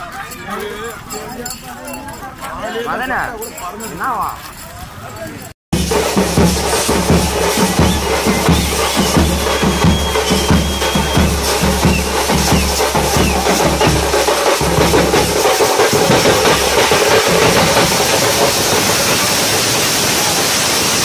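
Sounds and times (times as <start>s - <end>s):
large drums beating: 5.7s - 20.2s
crowd shouting and cheering: 6.4s - 14.5s.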